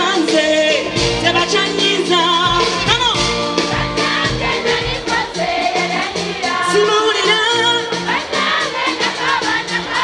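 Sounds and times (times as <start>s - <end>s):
live pop band playing: 0.0s - 10.0s
voices singing: 0.2s - 10.0s.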